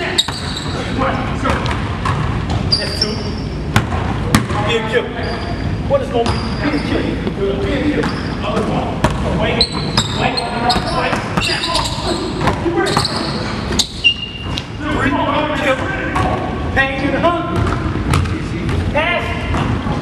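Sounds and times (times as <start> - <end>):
basketball bouncing on wooden floor: 1.5 - 2.7.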